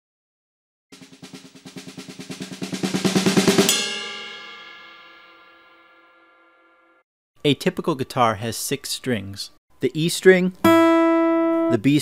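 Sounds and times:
fast drum roll: 0.9 - 5.5
ringing drum hit: 1.0 - 7.0.

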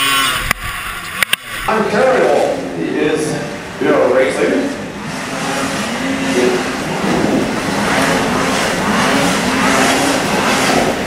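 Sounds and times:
snowmobile engines revving: 0.0 - 11.0
track noise: 0.0 - 11.0.

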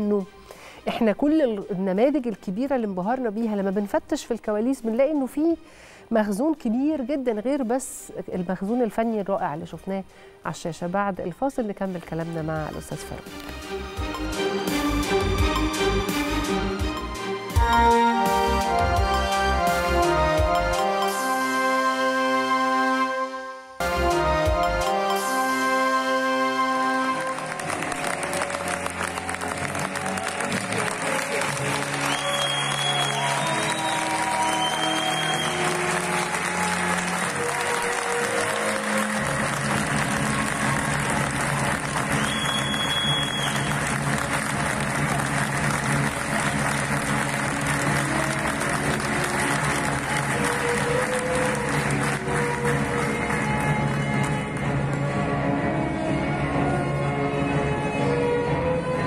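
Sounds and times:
music: 0.0 - 59.0
audience applauding: 27.0 - 55.0.

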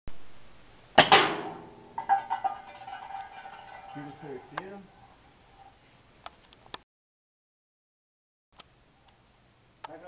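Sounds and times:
air rifle shot crack: 1.0 - 1.6
metallic can clatters: 2.0 - 4.6.

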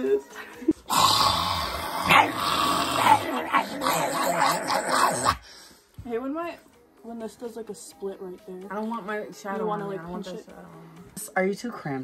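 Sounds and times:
people growling and snarling: 0.7 - 5.5.

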